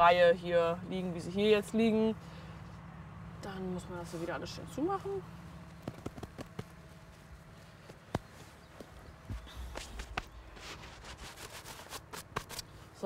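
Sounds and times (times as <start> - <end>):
soil crackling and clicking: 5.6 - 6.9, 7.8 - 12.7.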